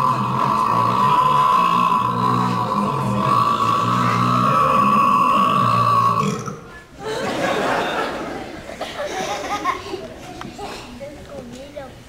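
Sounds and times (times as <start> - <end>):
murmur of children's voices: 0.0 - 12.0.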